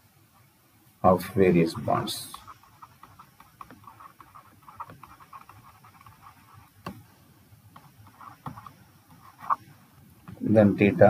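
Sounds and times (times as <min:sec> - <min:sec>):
stylus tapping on pen tablet: 0:02.3 - 0:07.1, 0:07.7 - 0:09.6, 0:10.2 - 0:10.4.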